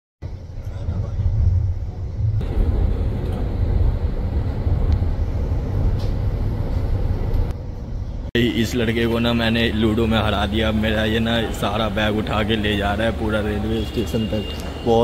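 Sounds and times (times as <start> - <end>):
train rumbling: 0.2 - 14.8.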